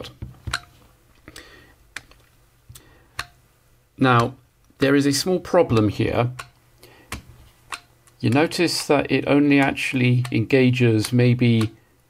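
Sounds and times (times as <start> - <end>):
plastic trigger clicks: 9.6 - 10.4.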